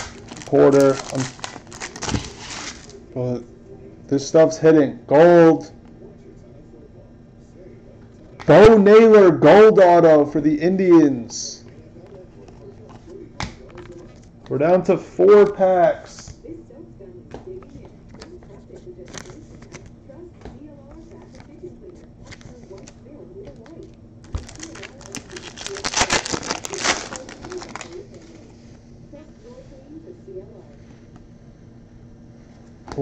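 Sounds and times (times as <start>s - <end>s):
wrapper tearing and crinkling: 0.0s - 3.0s, 24.2s - 28.4s.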